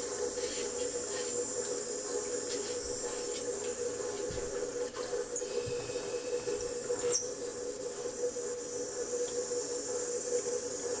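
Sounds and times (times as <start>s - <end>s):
washer motor humming with whine: 0.0s - 11.0s.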